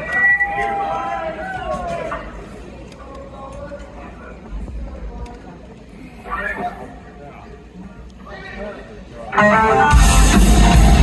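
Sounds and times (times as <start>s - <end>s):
faint voices: 0.0s - 9.6s.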